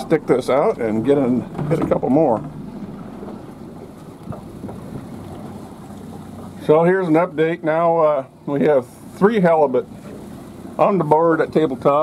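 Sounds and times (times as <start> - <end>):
low hum: 0.0 - 6.6
water noise: 0.0 - 12.0
wind: 0.0 - 12.0.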